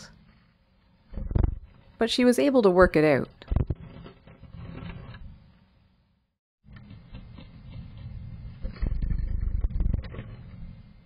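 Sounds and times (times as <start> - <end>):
bird scratching in wood shavings: 3.8 - 5.3, 6.7 - 10.6.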